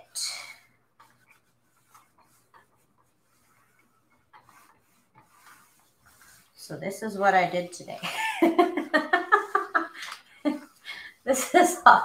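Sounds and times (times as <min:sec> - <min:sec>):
steam iron rubbing on paper: 0:00.1 - 0:12.0.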